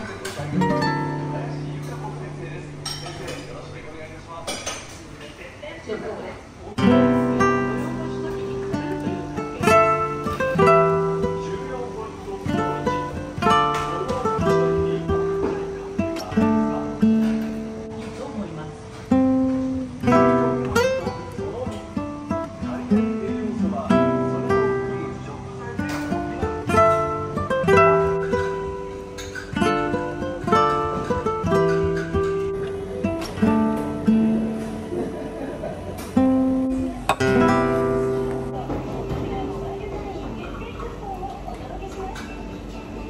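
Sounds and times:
acoustic guitar music: 0.0s - 5.0s, 6.7s - 41.9s.

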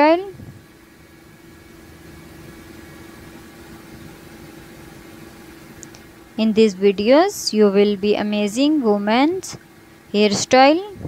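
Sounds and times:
constant hiss: 0.0s - 11.0s.

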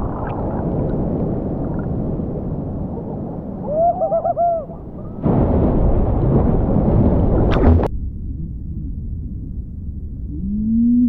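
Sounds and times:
sharp water splashes: 0.0s - 2.2s
seawater sloshing and rumbling: 0.0s - 11.0s
wavering hoot: 3.0s - 5.2s.

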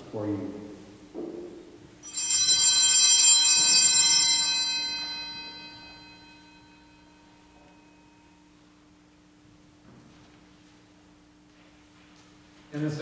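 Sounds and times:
small altar bells ringing: 2.0s - 8.6s.

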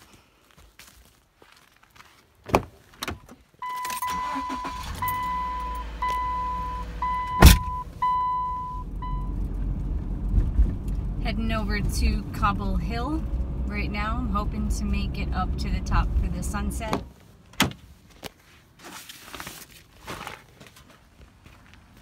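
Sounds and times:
warning chime beeping: 3.6s - 9.4s
car engine starting and idling: 3.6s - 17.7s
loud thump: 7.4s - 7.8s.

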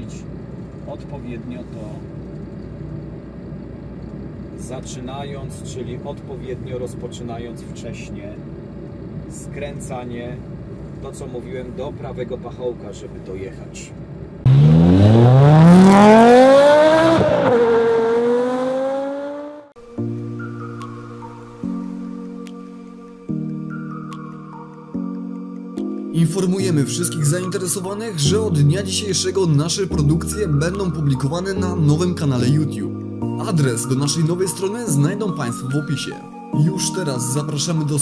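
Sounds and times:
truck diesel engine rumbling: 0.0s - 16.5s
car engine accelerating: 14.2s - 19.8s.

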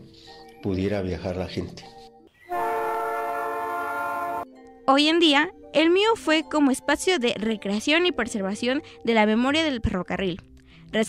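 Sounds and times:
train horn chord: 2.4s - 4.5s.

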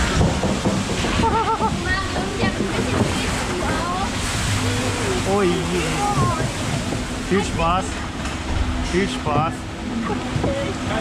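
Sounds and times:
water rushing in a flume: 0.0s - 11.0s
voices: 1.4s - 8.2s.

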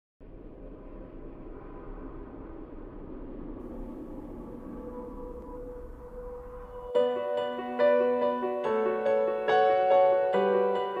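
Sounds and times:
hazy ballad music: 3.8s - 11.0s.

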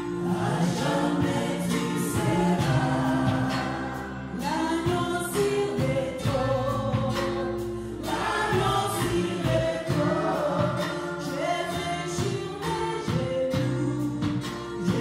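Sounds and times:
backing music with steady beat: 0.0s - 15.0s
gospel group singing in harmony: 0.0s - 15.0s.

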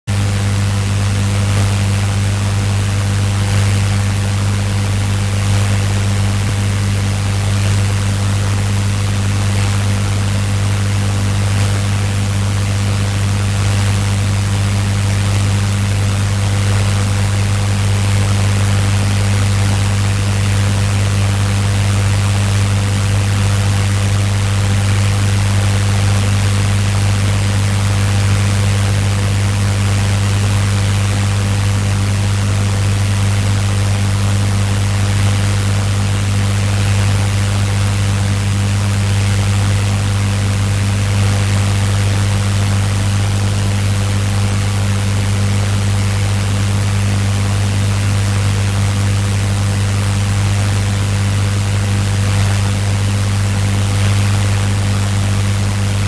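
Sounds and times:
steady low hum: 0.1s - 56.0s.

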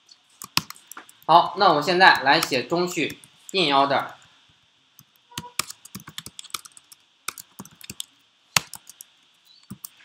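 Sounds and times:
typing on keyboard: 0.4s - 1.0s, 5.4s - 9.0s.

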